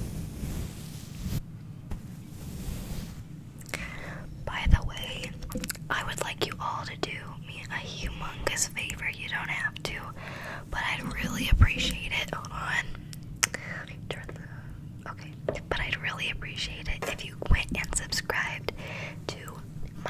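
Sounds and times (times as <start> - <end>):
girl whispering: 3.7 - 19.6.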